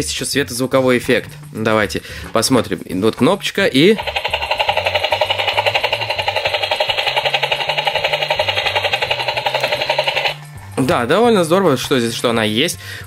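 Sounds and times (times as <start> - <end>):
toy electronic rotor chopping: 3.8 - 10.4.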